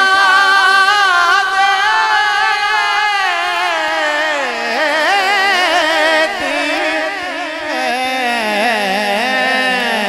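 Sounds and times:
man singing ornamented line: 0:00.0 - 0:10.0.

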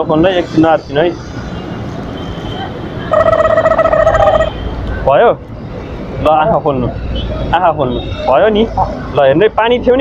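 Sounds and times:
roadside traffic: 0:00.0 - 0:10.0.

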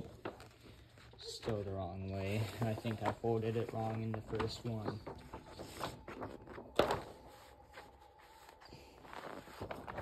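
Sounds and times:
paper poster rustling: 0:00.0 - 0:10.0
sharp paper crackle: 0:00.0 - 0:10.0.

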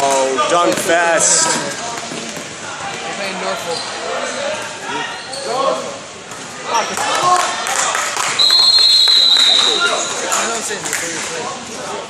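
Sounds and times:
gym court noise: 0:00.0 - 0:11.1
referee's whistle blast: 0:08.4 - 0:10.1.

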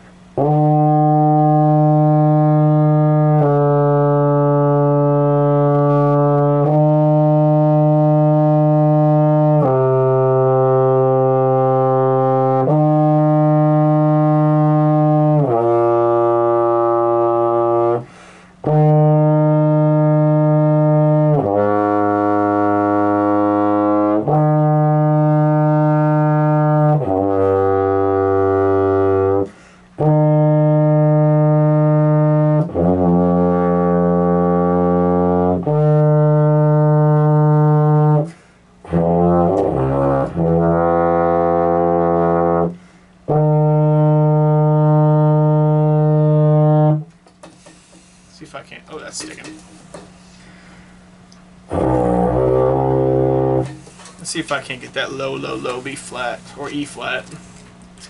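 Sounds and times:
baritone horn long tones: 0:00.0 - 0:47.2, 0:51.6 - 0:57.2.

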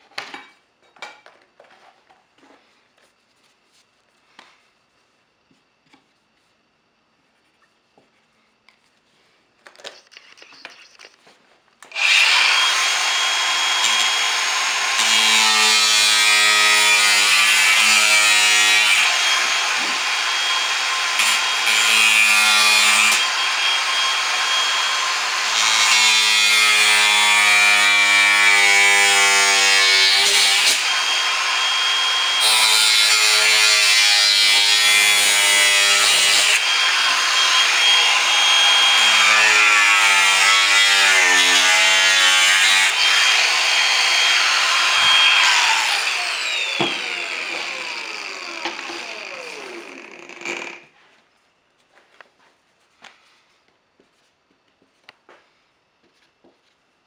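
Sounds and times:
angle grinder cutting panel: 0:11.8 - 0:50.9.

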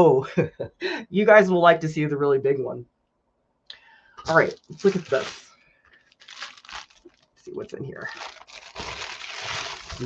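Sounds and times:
plastic mailer rustling: 0:04.3 - 0:10.0.

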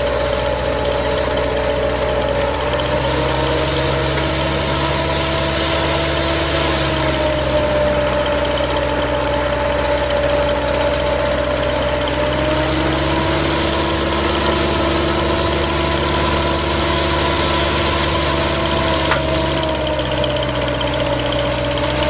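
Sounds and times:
drill rig engine running: 0:00.0 - 0:22.0
steady whine: 0:00.0 - 0:22.0.

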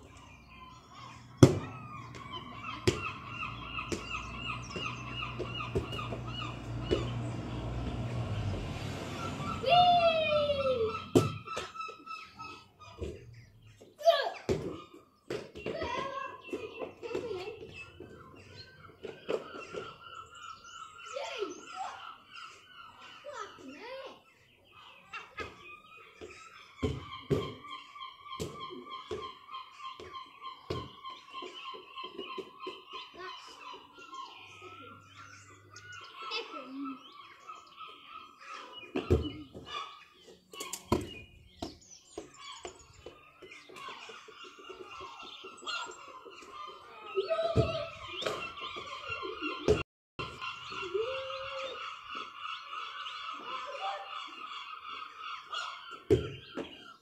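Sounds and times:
birds chirping and trilling: 0:00.0 - 0:57.0
sharp knocks and thuds: 0:01.4 - 0:03.2.

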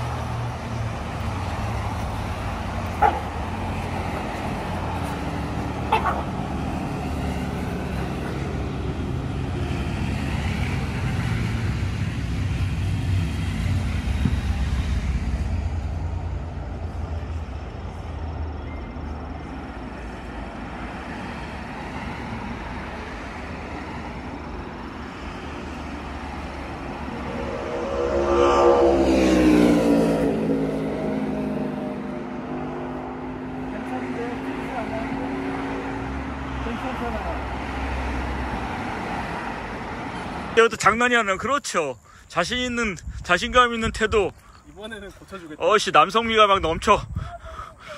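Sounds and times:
vehicle passing close: 0:00.0 - 0:18.1, 0:20.9 - 0:40.6
road traffic: 0:00.0 - 0:47.9.

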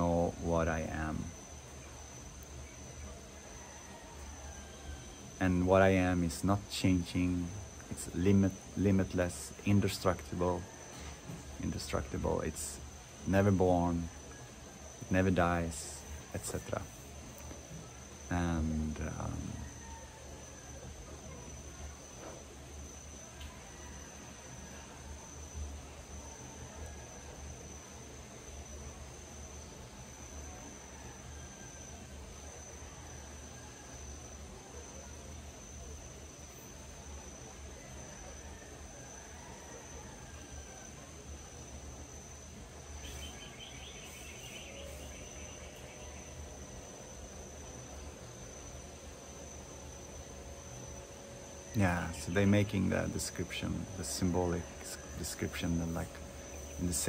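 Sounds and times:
insects trilling: 0:00.0 - 0:57.0
pulsing insect chirp: 0:00.0 - 0:57.0.

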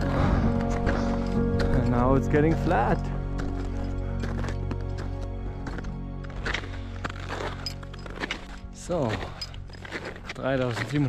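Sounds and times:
music of sustained tones: 0:00.0 - 0:10.9.

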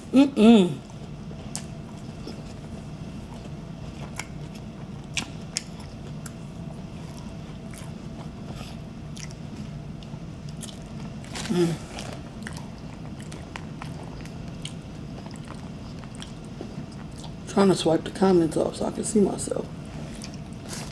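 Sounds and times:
low steady hum: 0:00.0 - 0:20.9
person chewing food: 0:00.8 - 0:17.4, 0:20.0 - 0:20.9.

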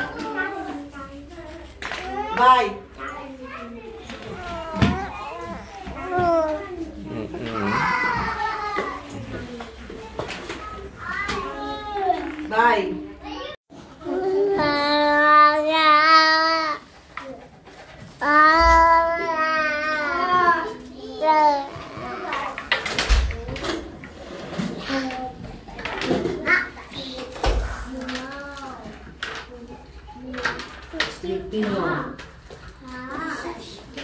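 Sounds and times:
children talking and calling out: 0:00.0 - 0:31.2, 0:31.8 - 0:34.0.

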